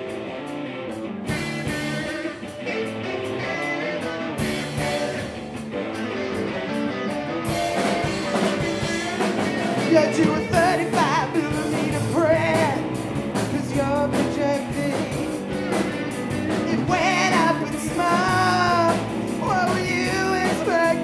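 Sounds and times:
electric guitars playing chords: 0.0 - 21.0
drum kit and cymbals: 0.9 - 21.0
person singing: 8.5 - 21.0.

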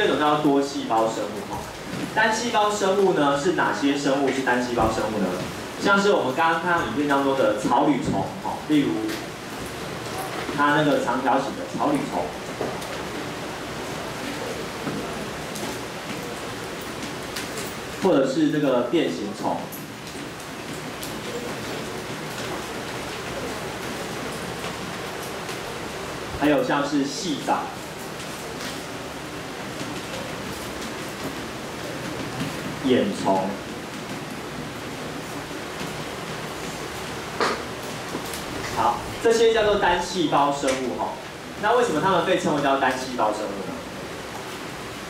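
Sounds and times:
room noise hiss: 0.0 - 45.0.

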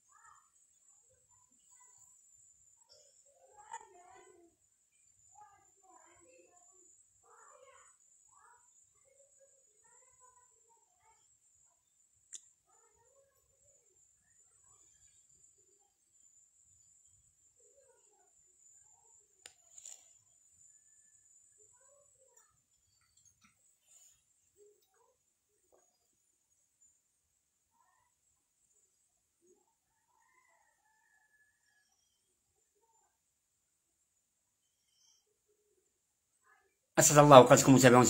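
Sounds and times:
faint animal call: 0.0 - 0.5, 29.4 - 33.2
faint rooster crow: 29.4 - 33.1.

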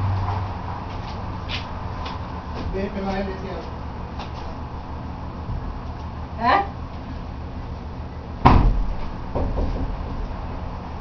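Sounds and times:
sharp bang: 8.4 - 9.5.

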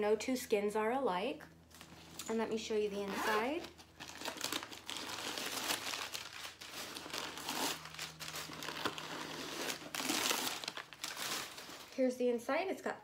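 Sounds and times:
paper crinkling and rustling: 3.3 - 12.0.

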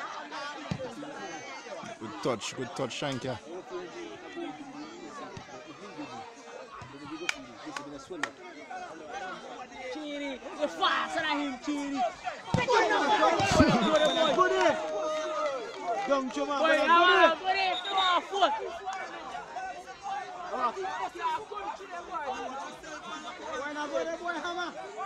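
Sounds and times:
people shouting and calling out: 0.0 - 25.0.

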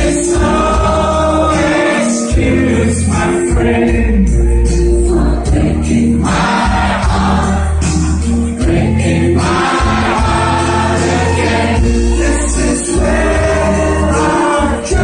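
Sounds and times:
heavy booming bass line: 0.0 - 15.0
pop-rock band playing: 0.0 - 15.0
several voices singing: 0.0 - 15.0.

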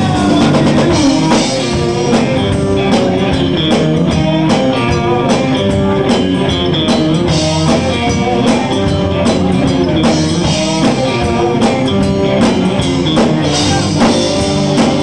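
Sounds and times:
drum kit beat: 0.0 - 15.0
electric guitars: 0.0 - 15.0.

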